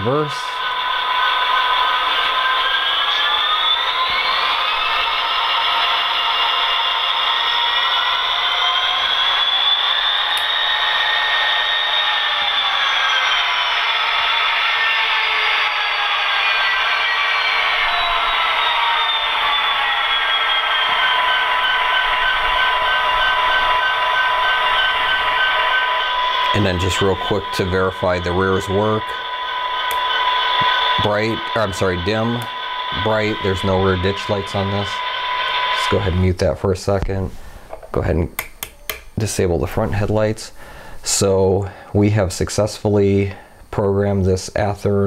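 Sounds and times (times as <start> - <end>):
diesel locomotive sound from small speaker: 0.0 - 37.5.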